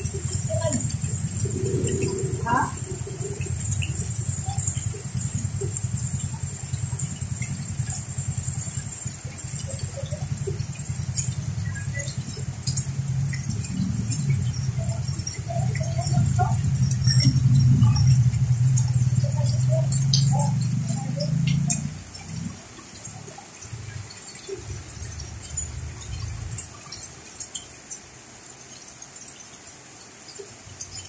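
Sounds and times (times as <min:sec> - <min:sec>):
motorcycle engine passing: 0:00.0 - 0:27.4
heavy rain on umbrella and street: 0:00.0 - 0:31.0.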